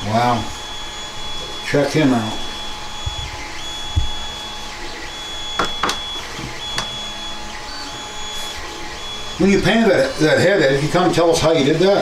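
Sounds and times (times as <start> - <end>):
high steady whine: 0.0 - 12.0.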